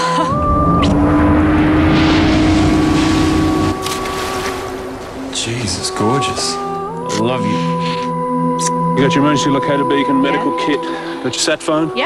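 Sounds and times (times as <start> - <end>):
rushing noise: 0.1 - 7.8
boat engine running: 0.1 - 12.0.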